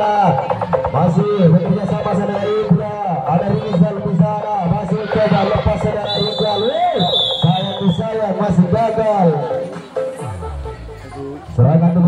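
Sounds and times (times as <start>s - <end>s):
spectators shouting: 4.8s - 8.0s
high whistle: 6.0s - 8.2s.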